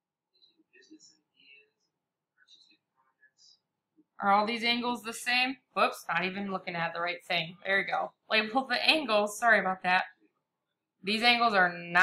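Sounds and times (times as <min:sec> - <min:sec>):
faint whispered muttering: 0:00.4 - 0:03.7.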